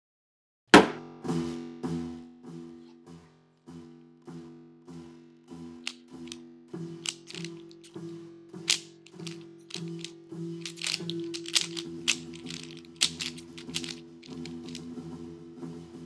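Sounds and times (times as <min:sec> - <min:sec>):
speed cube clicking: 0:07.0 - 0:08.0, 0:08.7 - 0:14.8.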